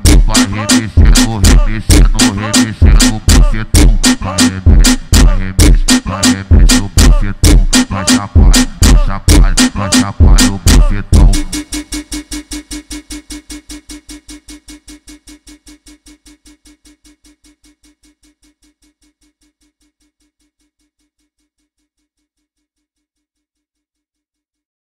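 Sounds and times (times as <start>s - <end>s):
funk beat with deep bass: 0.0s - 17.8s.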